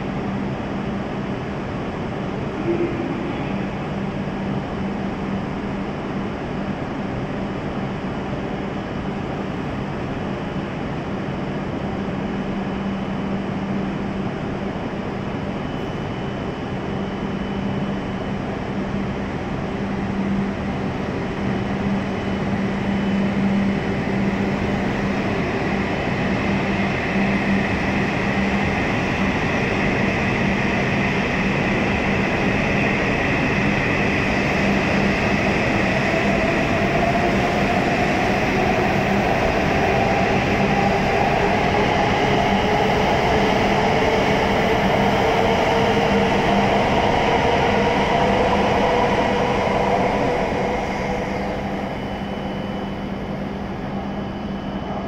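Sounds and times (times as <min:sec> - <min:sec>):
rising train whine: 0:00.0 - 0:55.0
steady low hum: 0:00.0 - 0:55.0
train rolling rush: 0:00.0 - 0:55.0.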